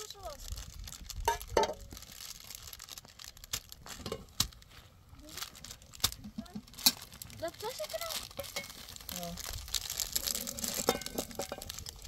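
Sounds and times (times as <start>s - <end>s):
plastic packet crinkling: 0.0s - 12.0s.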